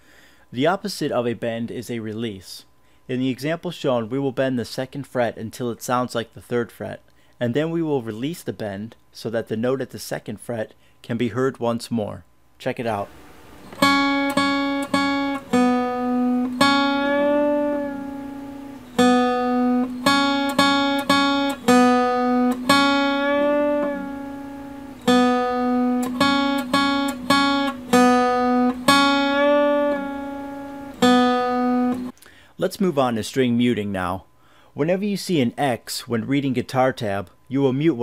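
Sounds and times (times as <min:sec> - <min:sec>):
acoustic guitar notes with bend: 0:13.6 - 0:32.1.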